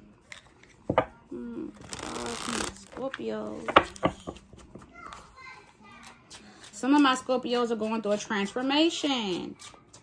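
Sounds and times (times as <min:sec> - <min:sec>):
cards riffling: 0:01.8 - 0:03.1.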